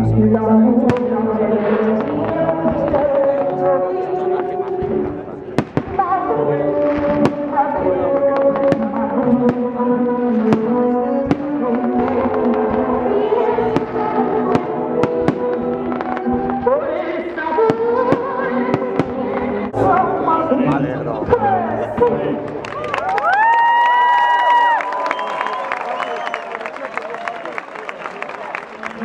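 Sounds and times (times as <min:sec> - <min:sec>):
music with sustained notes: 0:00.0 - 0:22.8
fireworks bursting with sharp bangs: 0:04.7 - 0:20.0.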